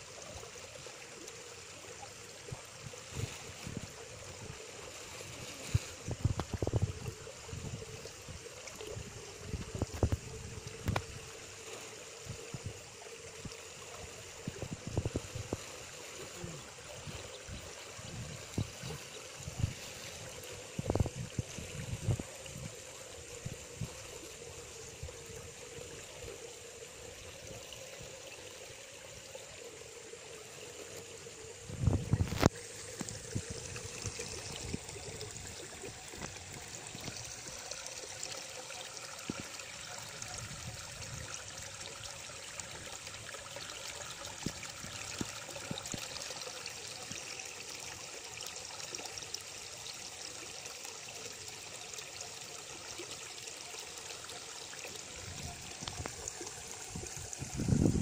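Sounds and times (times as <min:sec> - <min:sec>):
water trickling into pond: 0:00.0 - 0:58.0.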